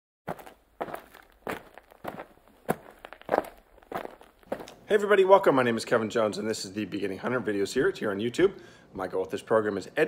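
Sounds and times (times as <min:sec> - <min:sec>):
footsteps: 0:00.3 - 0:04.9.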